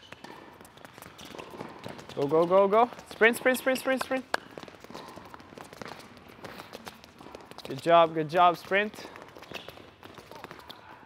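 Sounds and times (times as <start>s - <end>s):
sneakers tapping on hard court: 0.0s - 11.0s.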